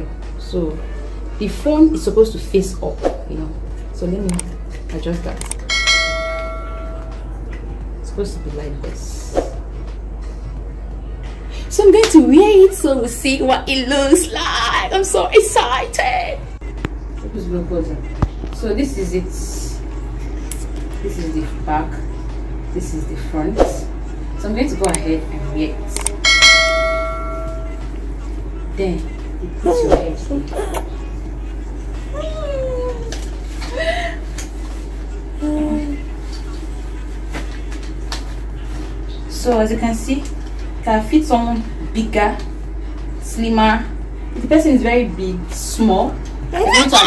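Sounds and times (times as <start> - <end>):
notification bell chime: 26.3 - 27.8.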